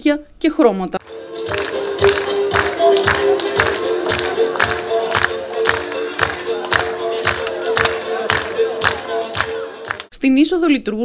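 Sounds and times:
music with steady beat: 1.0 - 10.1.

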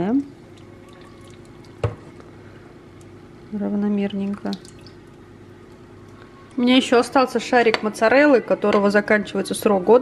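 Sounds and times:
liquid trickling into dish: 0.4 - 2.4, 4.0 - 6.9.

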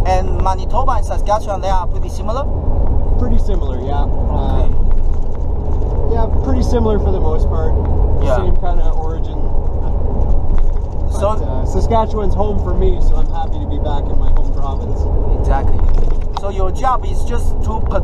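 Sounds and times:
person talking: 0.0 - 2.5, 3.2 - 4.8, 6.1 - 10.0, 10.6 - 18.0
road and engine rumble in truck cab: 0.0 - 18.0.

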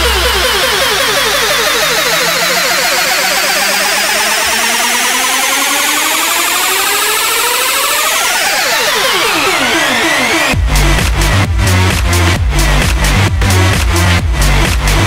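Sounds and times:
synth tones sliding in pitch: 0.0 - 13.2
electronic dance music build-up: 0.0 - 15.0.

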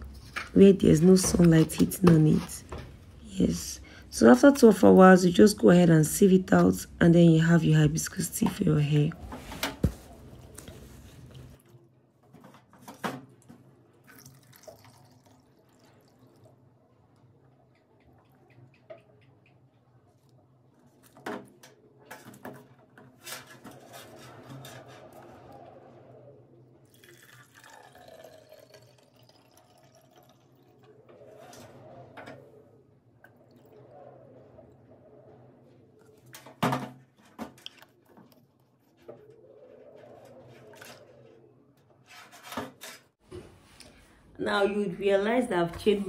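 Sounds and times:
tea pouring into plastic bottle: 14.0 - 16.6, 26.8 - 30.9
scraping rubbing sounds: 23.0 - 26.3, 37.1 - 43.2.

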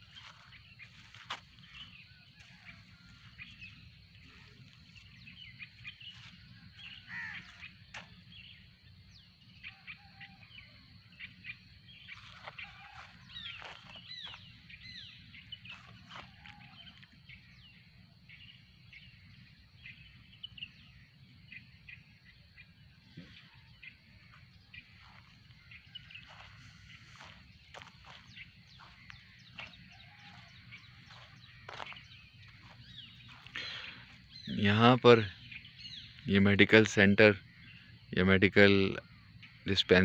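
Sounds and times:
birds chirping and calling: 0.0 - 40.0.

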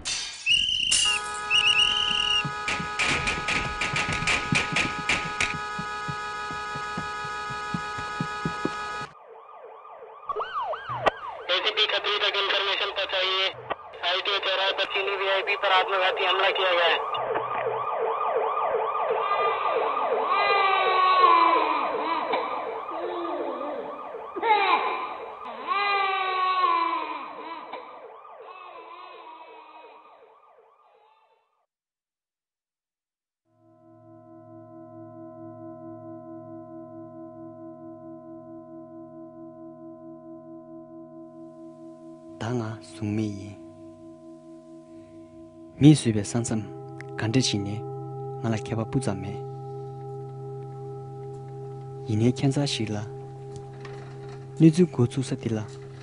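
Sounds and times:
trilled whistle blasts: 0.4 - 4.0
sirens wailing: 0.6 - 31.3, 41.4 - 56.0
sirens yelping: 0.6 - 31.4
hum of held tones: 1.0 - 9.1, 34.0 - 45.8, 46.7 - 52.5
sharp knocks: 2.1 - 9.1.

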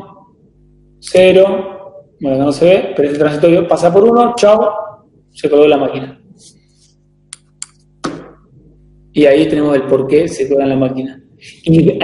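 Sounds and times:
faint low hum: 0.0 - 12.0
short sharp clicks: 7.3 - 8.4.

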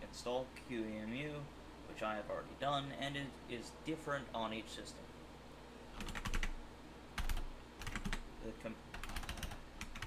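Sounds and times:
computer keyboard typing: 6.0 - 6.6, 7.2 - 8.2, 8.9 - 10.0.

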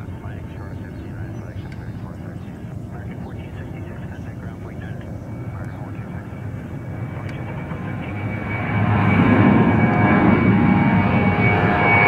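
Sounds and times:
jet engines at takeoff power: 0.0 - 12.0.

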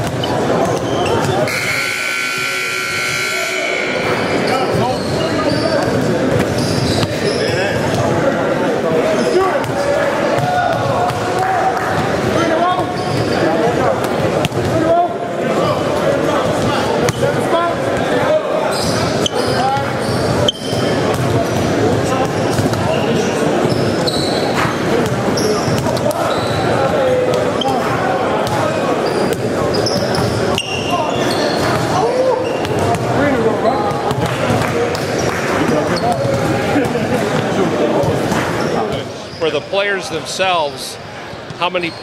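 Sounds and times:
hubbub of indistinct voices: 0.0 - 42.0
basketballs bouncing on wooden floor: 32.6 - 33.3, 33.9 - 38.4.

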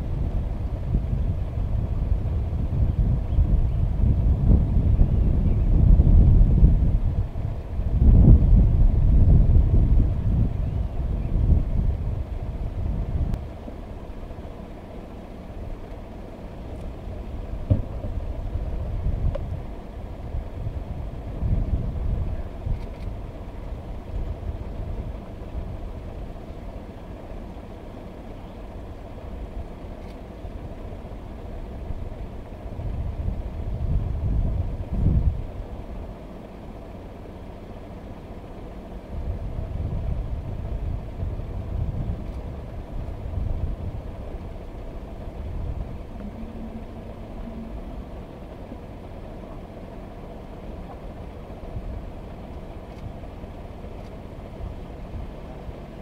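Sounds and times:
vehicle engine idling: 0.0 - 56.0.

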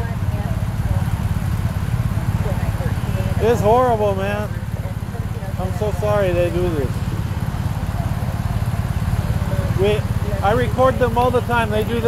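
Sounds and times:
vehicle engine idling: 0.0 - 12.0
man speaking: 3.4 - 4.5, 5.5 - 7.0, 9.7 - 12.0.

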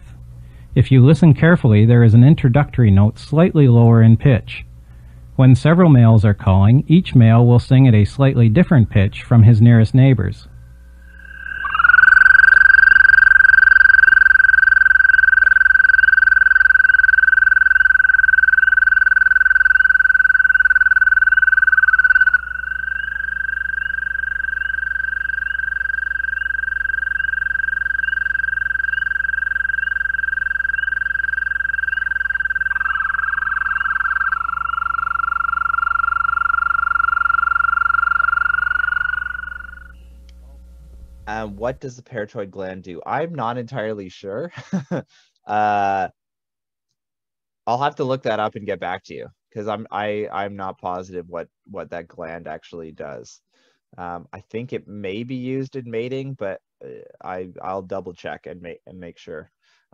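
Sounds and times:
toads trilling: 10.4 - 40.2.

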